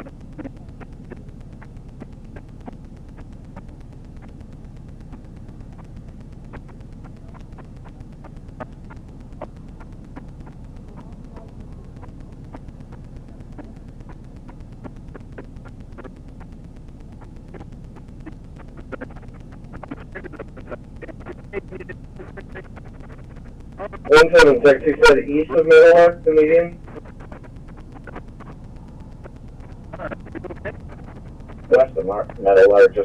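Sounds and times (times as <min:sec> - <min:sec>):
faint clicks: 0:00.0 - 0:24.2, 0:25.5 - 0:32.5.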